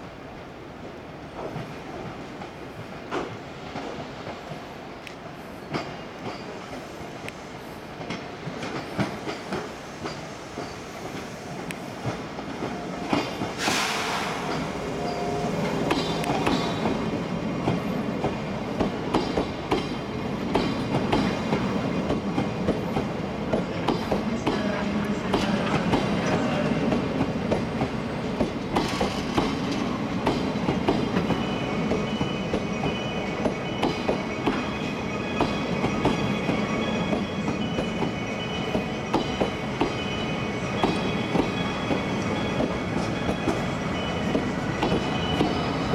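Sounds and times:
train wheels clicking over rail joints: 5.1s - 14.8s, 15.6s - 40.1s, 40.7s - 45.9s.

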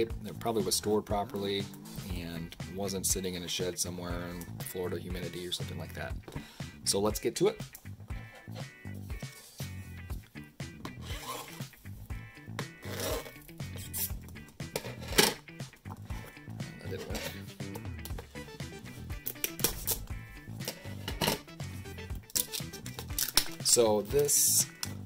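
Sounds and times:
background music: 0.0s - 25.0s
scissors snipping plastic: 19.2s - 20.0s.

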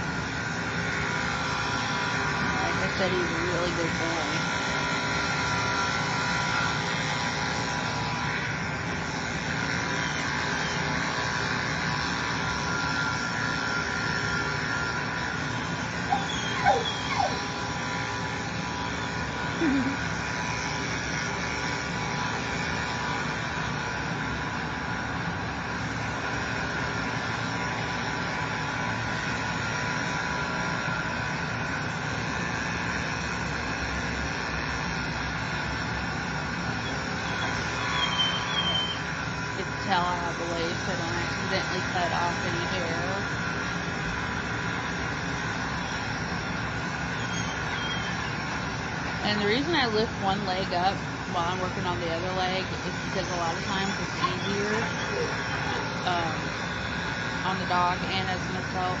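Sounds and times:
electric clipper motor hum: 0.0s - 59.0s.

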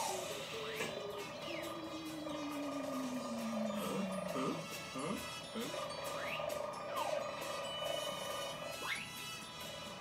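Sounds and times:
warbling sci-fi tone: 0.0s - 9.3s
electronic swoops: 5.7s - 9.3s.

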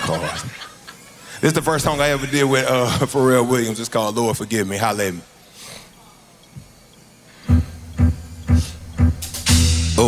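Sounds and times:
live hip-hop band: 7.4s - 10.0s
bass drum hits: 7.5s - 10.0s.

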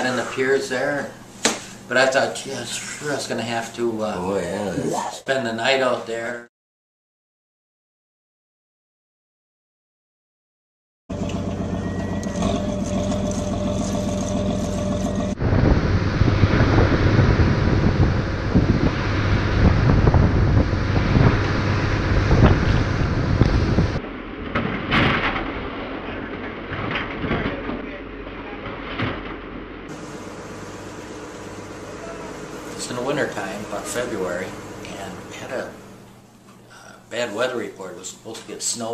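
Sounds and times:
boat engine running: 11.1s - 24.3s, 25.8s - 36.0s
wind: 11.1s - 34.4s
water noise: 11.3s - 27.0s.

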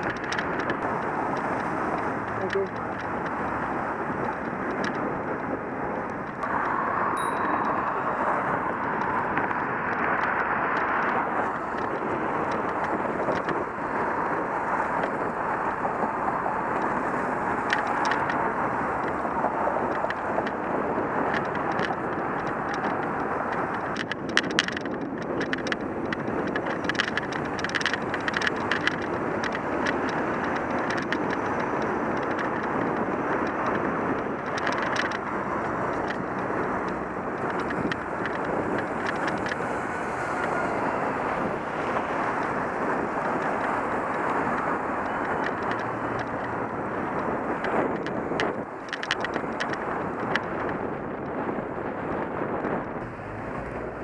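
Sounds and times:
bicycle clicks and rattles: 0.0s - 53.1s
traffic noise: 0.0s - 54.0s
wind noise: 0.0s - 54.0s.

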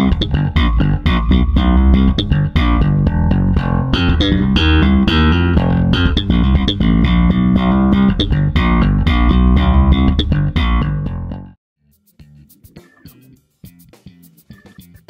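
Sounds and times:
funky electric bass guitar: 0.0s - 15.0s.

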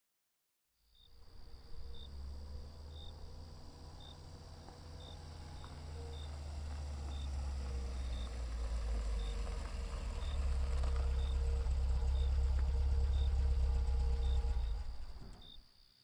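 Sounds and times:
car engine idling: 1.1s - 15.6s.

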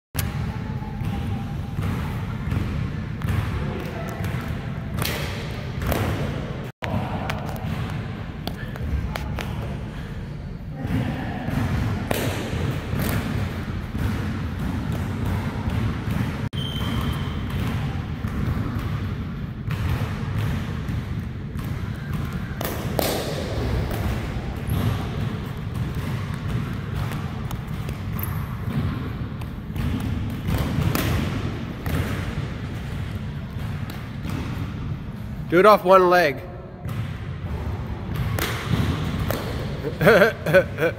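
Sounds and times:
basketball bouncing: 0.2s - 9.7s, 10.8s - 35.0s, 36.8s - 40.9s.

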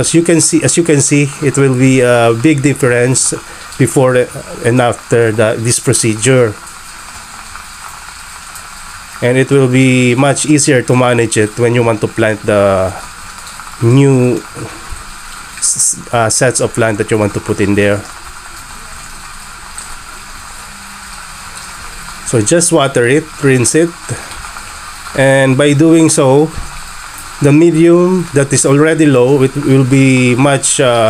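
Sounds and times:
water mister spraying: 0.0s - 31.0s.

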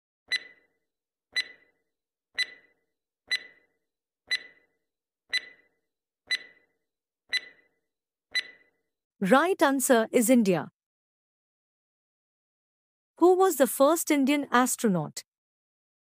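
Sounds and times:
timer tick click with ring: 0.3s - 0.6s, 1.4s - 1.6s, 2.4s - 2.7s, 3.3s - 3.6s, 4.3s - 4.6s, 5.3s - 5.6s, 6.3s - 6.6s, 7.3s - 7.6s, 8.3s - 8.6s.

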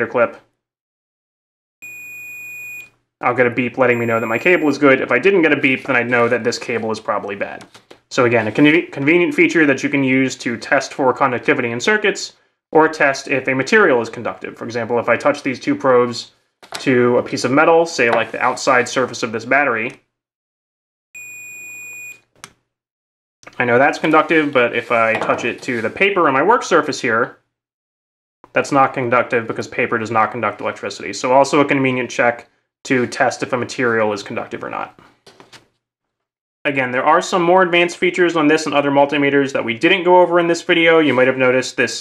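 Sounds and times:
multimeter continuity beep: 1.8s - 2.9s, 3.9s - 4.9s, 21.2s - 22.2s.

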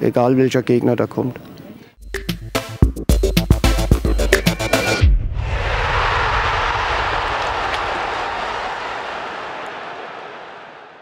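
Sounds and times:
rushing noise: 5.1s - 9.0s.

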